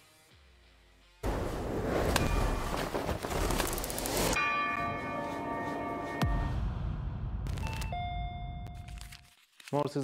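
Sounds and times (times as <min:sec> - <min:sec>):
bell-like chime ringing: 0:04.4 - 0:06.6, 0:07.6 - 0:09.0.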